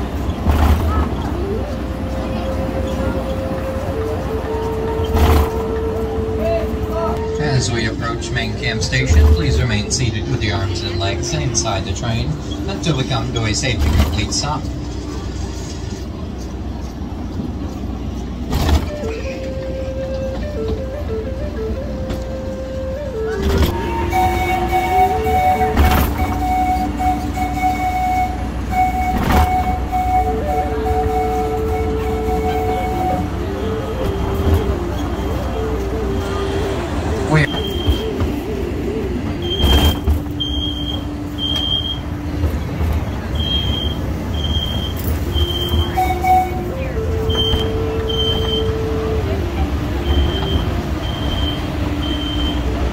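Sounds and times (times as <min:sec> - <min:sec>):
train clunks: 0:00.0 - 0:52.9
train rumbling: 0:00.0 - 0:52.9.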